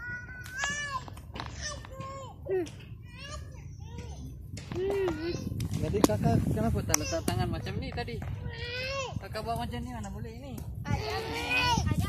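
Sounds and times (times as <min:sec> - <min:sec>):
children shouting and squealing: 0:00.0 - 0:05.6, 0:08.4 - 0:09.2, 0:10.8 - 0:12.0.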